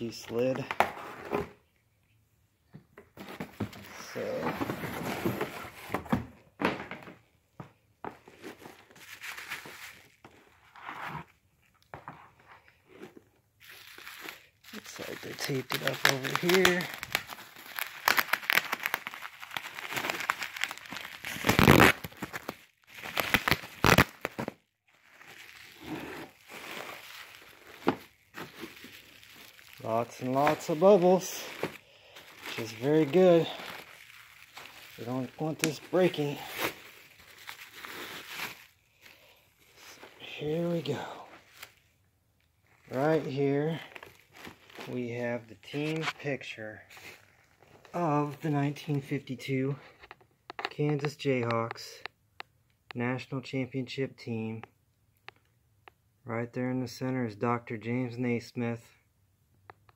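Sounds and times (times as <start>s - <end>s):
bubble wrap crinkling: 8.4s - 11.2s, 13.6s - 41.9s, 42.5s - 46.2s
bubble wrap crackles: 8.9s - 10.2s, 13.6s - 41.9s, 42.6s - 46.2s.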